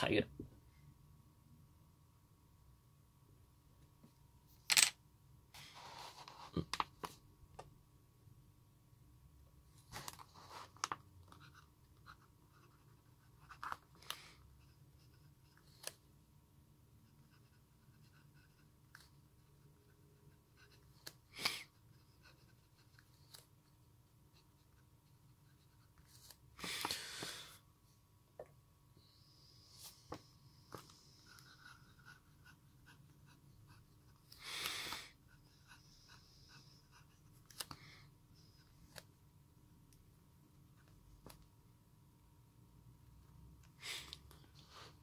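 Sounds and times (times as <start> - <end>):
pen scratching on paper: 11.3 - 13.8, 14.6 - 16.0, 17.0 - 26.4, 30.8 - 37.4.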